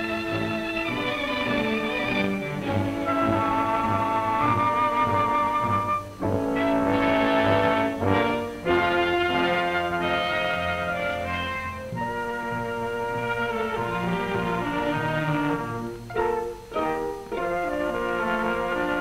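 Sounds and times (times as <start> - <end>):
orchestral music with brass: 0.0 - 19.0.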